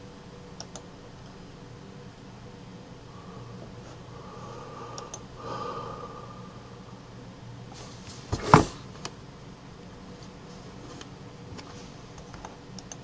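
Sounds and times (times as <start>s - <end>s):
faint whine: 0.0s - 8.4s
low electrical hum: 0.0s - 13.0s
light clicks: 11.0s - 13.0s.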